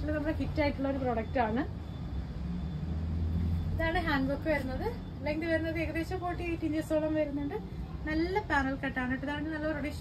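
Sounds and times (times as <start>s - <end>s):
woman's voice: 3.8s - 10.0s.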